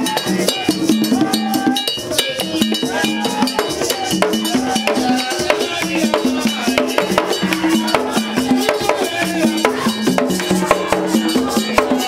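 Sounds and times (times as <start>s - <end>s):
hand drums in interlocking rhythm: 0.0s - 12.0s.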